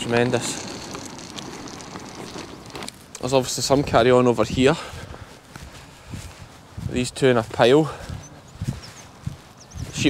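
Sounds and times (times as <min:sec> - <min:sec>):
footsteps on frosty grass: 0:01.0 - 0:10.0
faint high bird chirps: 0:08.1 - 0:10.0.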